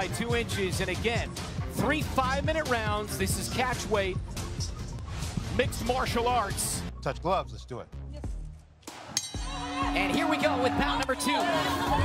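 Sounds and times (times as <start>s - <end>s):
background music: 0.0s - 12.0s
fight bell ringing: 9.2s - 10.8s.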